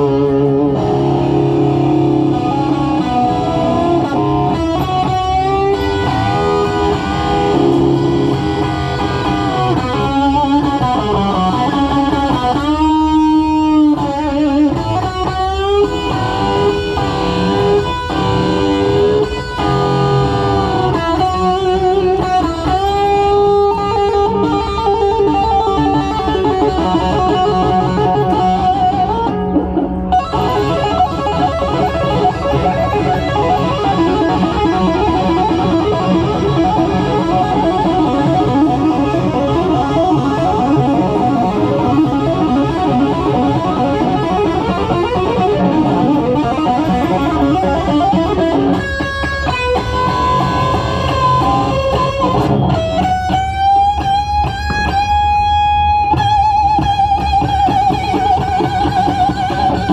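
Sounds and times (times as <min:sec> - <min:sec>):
bass guitar: 0:00.0 - 0:59.9
drums: 0:00.0 - 0:59.9
electric guitar solo: 0:00.0 - 0:59.9.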